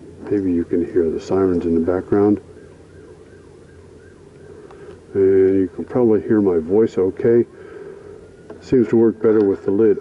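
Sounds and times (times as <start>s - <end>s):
distant sirens: 0.0s - 10.0s
low steady background noise: 0.0s - 10.0s.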